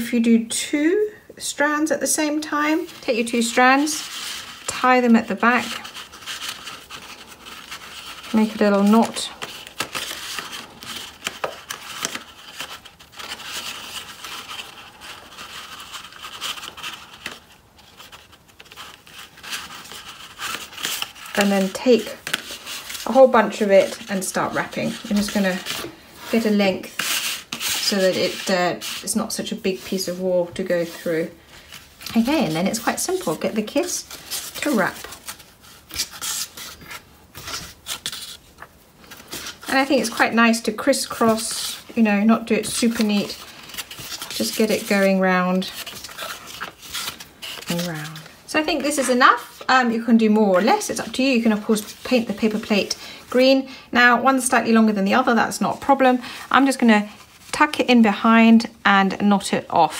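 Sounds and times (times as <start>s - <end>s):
yarn rustling against paper plate: 1.8s - 59.9s.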